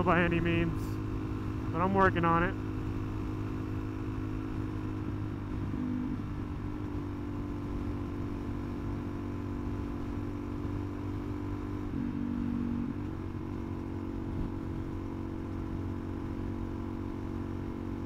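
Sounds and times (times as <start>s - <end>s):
motorcycle engine running: 0.0s - 18.0s.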